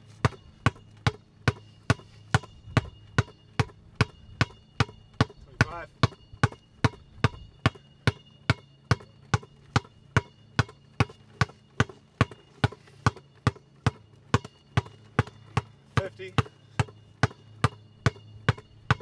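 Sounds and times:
basketball bouncing on asphalt: 0.0 - 19.0.

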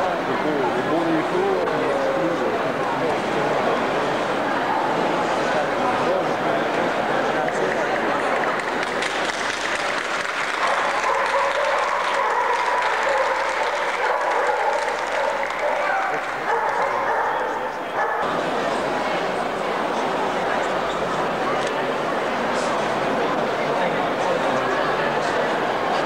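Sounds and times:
crowd hubbub: 0.0 - 26.0.

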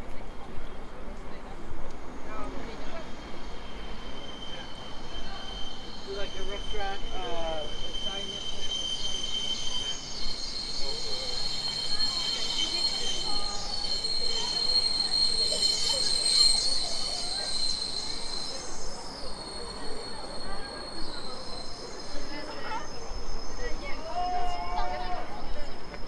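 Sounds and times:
city street noise: 0.0 - 26.0
high-pitched metallic squeal: 2.8 - 26.0.

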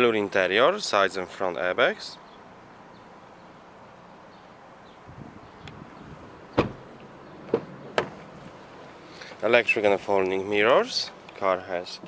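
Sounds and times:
car door thudding shut: 6.5 - 8.3.

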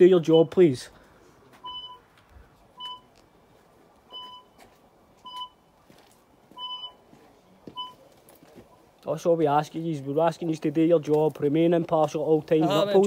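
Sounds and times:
short electronic beeps: 1.6 - 2.1, 2.8 - 3.1, 4.1 - 4.6, 5.2 - 5.6, 6.6 - 7.0, 7.8 - 8.0.

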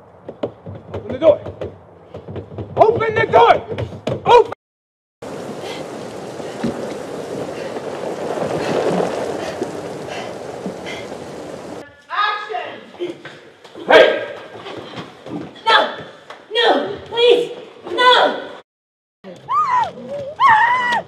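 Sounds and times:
heavy rain pouring: 5.2 - 11.8
people shouting and crying out: 19.4 - 21.0.

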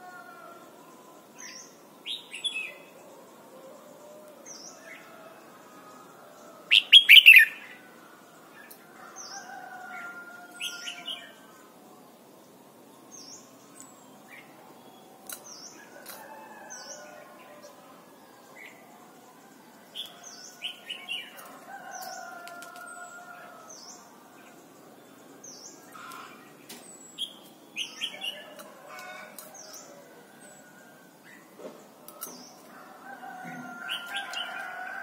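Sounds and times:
bird chirping: 6.7 - 7.8.

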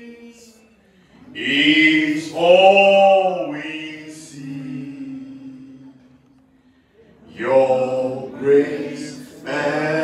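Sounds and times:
voices singing unaccompanied: 1.4 - 6.1, 7.3 - 10.0.

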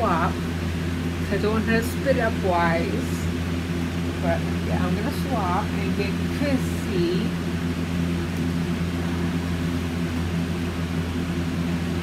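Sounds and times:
appliance humming: 0.0 - 12.0.

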